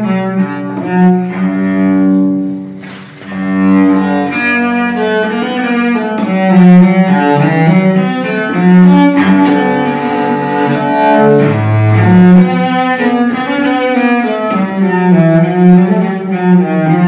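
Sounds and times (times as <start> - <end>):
bowed cello melody: 0.0 - 17.0.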